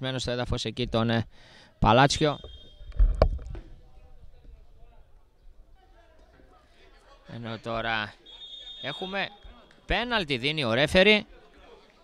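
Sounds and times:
distant voices of players: 2.2s - 10.0s.

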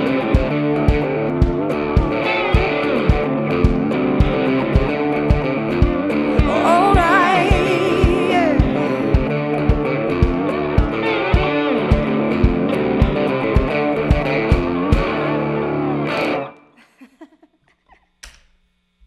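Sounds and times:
steady kick drum beat: 0.4s - 15.2s.

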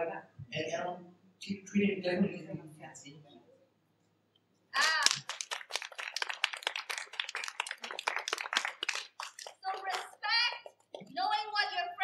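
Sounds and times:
small group applauding: 4.8s - 11.6s.

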